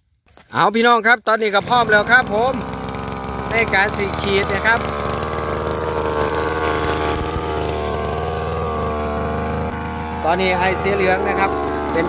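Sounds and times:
small petrol engine running: 1.5s - 12.0s.

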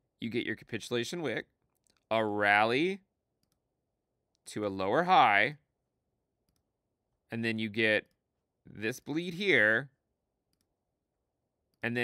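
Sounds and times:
man speaking: 0.2s - 1.5s, 2.1s - 3.1s, 4.5s - 5.6s, 7.3s - 8.1s, 8.7s - 10.0s.

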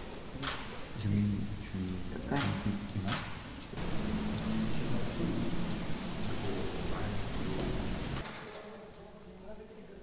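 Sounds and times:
faint low murmur: 0.0s - 10.0s.

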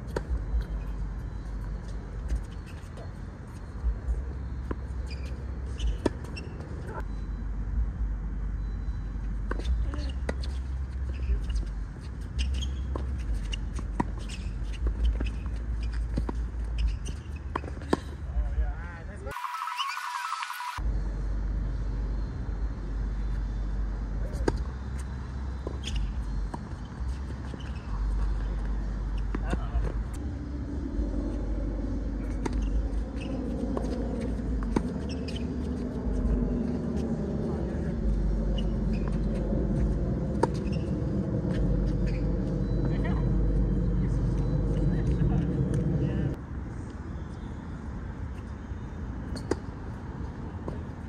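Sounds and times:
low mechanical motor hum: 0.0s - 19.1s, 20.8s - 46.4s
steady low rumble: 0.0s - 19.3s, 20.8s - 47.0s
tennis ball bouncing: 32.3s - 35.9s, 38.6s - 40.9s.

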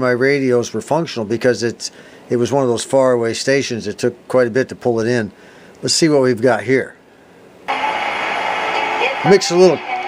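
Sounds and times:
radio static hiss: 7.7s - 10.0s.

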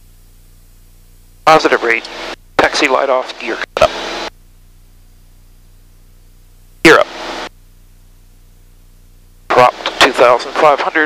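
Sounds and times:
intercom hiss and hum: 0.2s - 11.0s.

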